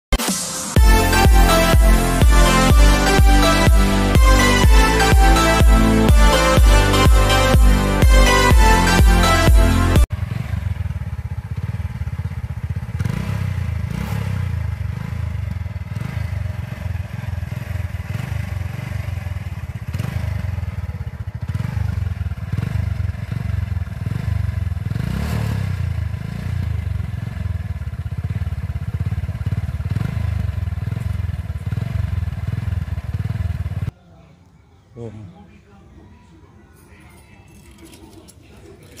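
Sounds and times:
motorcycle exhaust running: 10.0s - 33.9s.

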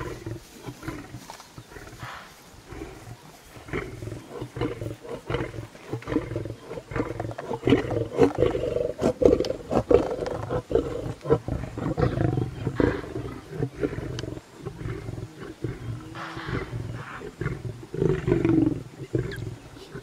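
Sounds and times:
lions growling: 0.0s - 20.0s.

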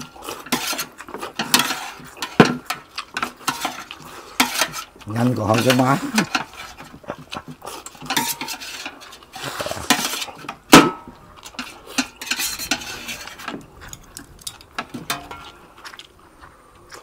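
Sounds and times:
metal clattering on plate: 0.0s - 4.8s, 5.4s - 15.6s
noodles being slurped: 0.0s - 10.6s.

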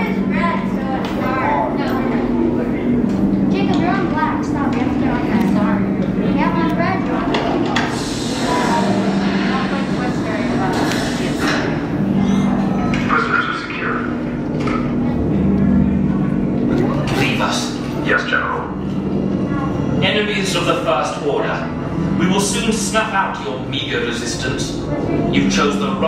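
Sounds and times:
crowd chatter: 0.0s - 26.0s
low two-pitch drone: 0.0s - 26.0s.

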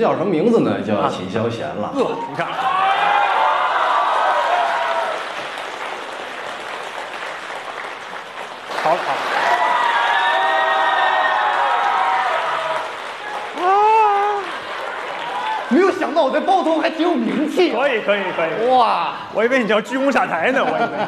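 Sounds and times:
crowd cheering calls: 2.3s - 7.6s, 8.7s - 17.6s
audience applauding: 2.7s - 18.3s.

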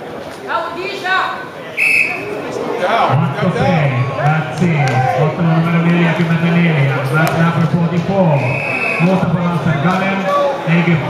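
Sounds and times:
voices in a hall: 0.0s - 11.0s
referee's whistle blast: 1.8s - 2.3s, 8.4s - 9.1s.

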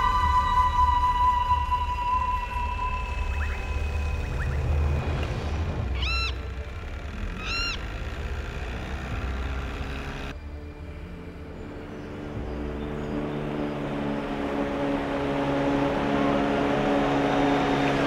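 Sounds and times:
motorboat engine humming: 0.0s - 18.0s
bird calls: 2.4s - 5.0s, 5.9s - 8.1s.

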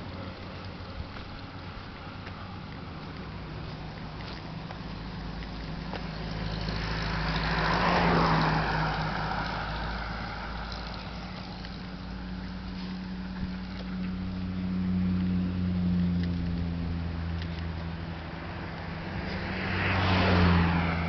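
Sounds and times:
vehicle passing by: 0.0s - 21.0s
steady low hum: 8.2s - 19.7s.

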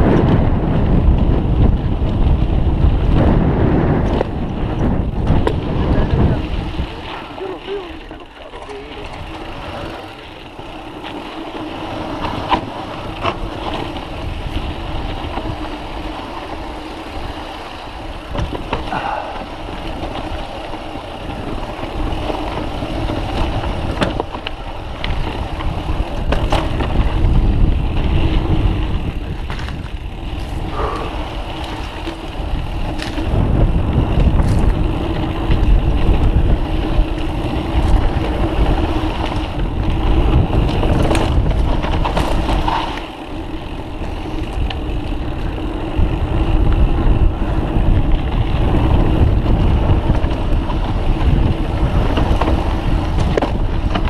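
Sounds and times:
bike rattling: 0.0s - 54.0s
wind rush on microphone: 0.0s - 54.0s
bike knocking over ground: 18.2s - 19.4s.

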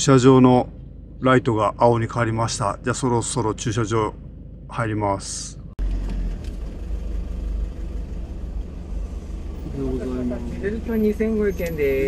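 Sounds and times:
engine rumble: 0.0s - 12.0s
road noise: 0.0s - 12.0s.

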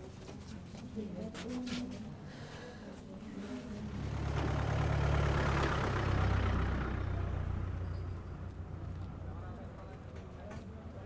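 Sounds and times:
vehicle engine driving past: 3.6s - 9.6s.

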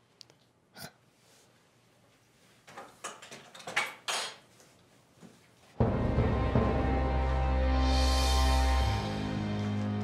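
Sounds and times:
music: 5.8s - 10.0s.

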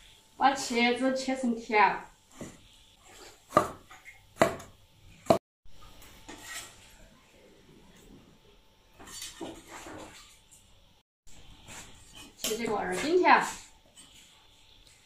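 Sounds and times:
cleaver chopping on wooden board: 3.5s - 3.8s, 4.4s - 4.7s.

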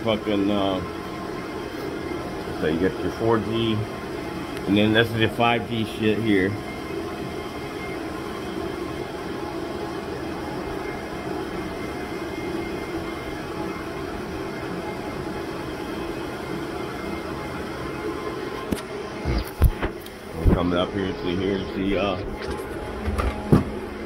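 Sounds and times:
cooling fans and air conditioning: 0.0s - 24.0s.

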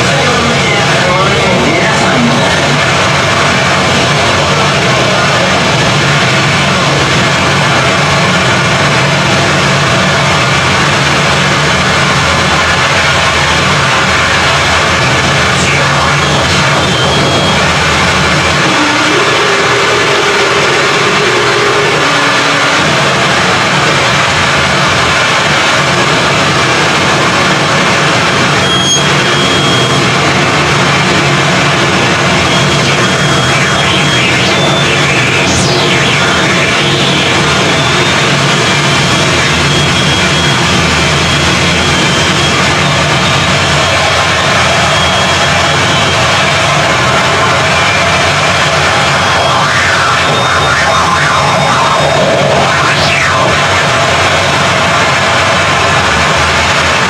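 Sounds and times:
harsh noise wall: 0.0s - 57.0s.

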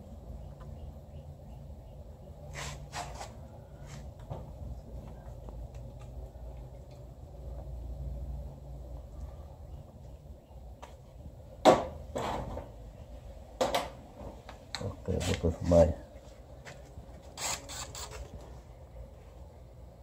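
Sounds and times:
low steady rumble: 3.4s - 17.2s.

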